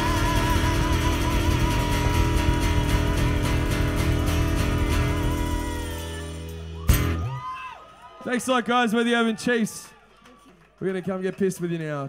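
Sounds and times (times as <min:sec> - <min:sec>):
blues band playing: 0:00.0 - 0:07.5.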